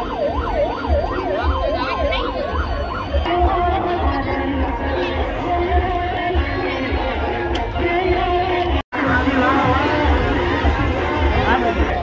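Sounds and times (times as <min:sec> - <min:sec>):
siren wailing: 0:00.0 - 0:03.9
deep bass beat: 0:00.0 - 0:12.0.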